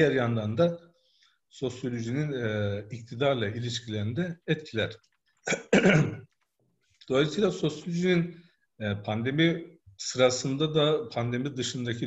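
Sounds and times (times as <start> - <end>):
man clearing his throat: 5.5 - 6.2.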